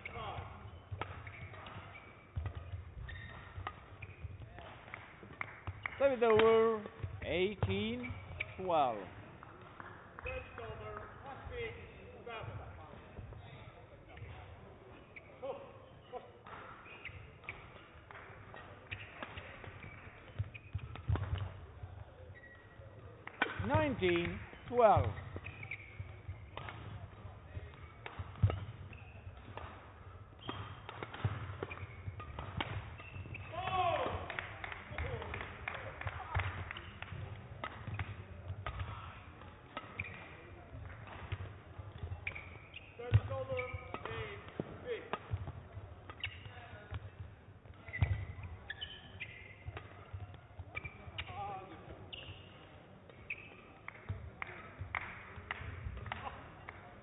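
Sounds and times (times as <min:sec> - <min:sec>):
shoe squeaks: 0:00.0 - 0:04.6, 0:07.2 - 0:09.0, 0:10.2 - 0:10.7, 0:14.8 - 0:23.0, 0:23.6 - 0:34.0, 0:39.8 - 0:40.6, 0:42.1 - 0:45.0, 0:46.1 - 0:46.9, 0:47.8 - 0:53.8
rackets striking shuttlecock: 0:00.0 - 0:11.1, 0:16.1 - 0:57.0
footfalls on court floor: 0:00.0 - 0:14.4, 0:16.4 - 0:39.2.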